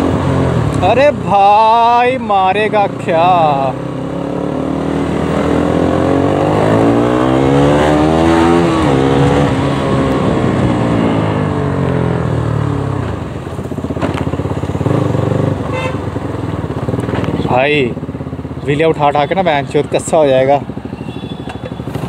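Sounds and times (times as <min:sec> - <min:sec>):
motorcycle engine accelerating: 0:00.0 - 0:22.0.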